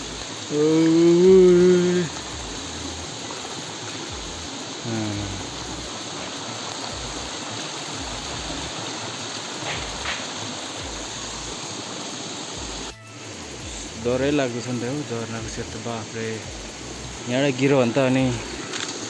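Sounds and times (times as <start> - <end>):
stream rushing over rocks: 0.0 - 19.0
short voice sound: 4.8 - 5.5.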